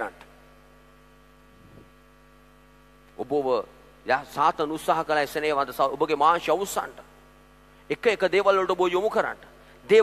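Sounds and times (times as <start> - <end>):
man's amplified voice: 0.0 - 0.3, 3.2 - 7.1, 7.9 - 10.0
electrical mains hum: 0.0 - 10.0.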